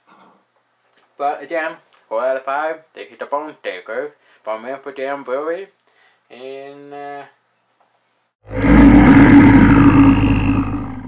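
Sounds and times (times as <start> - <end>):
deep rough rumble: 8.5 - 11.0.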